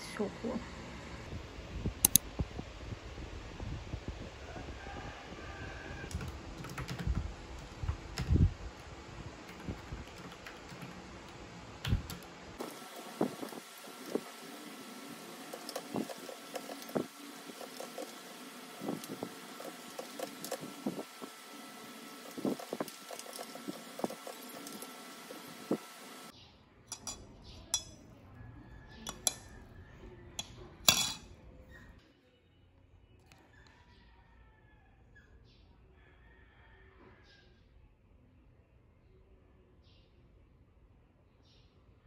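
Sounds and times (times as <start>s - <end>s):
mechanical keyboard typing: 6.1s - 7.2s, 9.5s - 11.0s
spoon clinking against mug: 26.9s - 27.2s, 27.8s - 28.0s, 29.1s - 29.5s, 30.4s - 31.2s.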